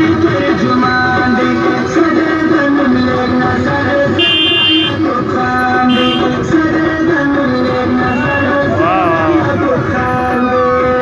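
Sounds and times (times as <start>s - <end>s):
loud music: 0.0s - 11.0s
car horn blast: 4.2s - 5.0s, 5.9s - 6.4s.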